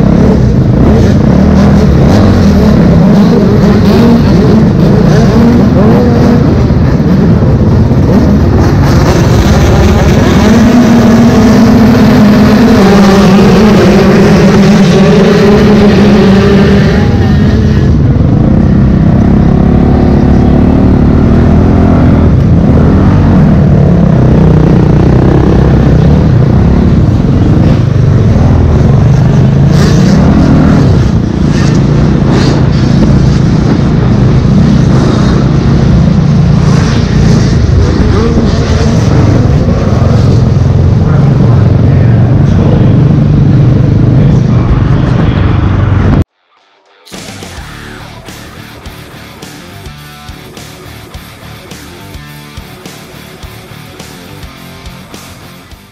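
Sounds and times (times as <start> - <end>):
motocross bike engine revving: 0.0 - 46.2, 47.1 - 55.9.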